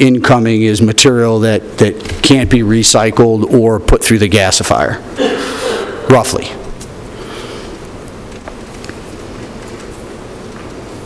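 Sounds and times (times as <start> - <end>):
steady rumbling noise: 0.0 - 11.0.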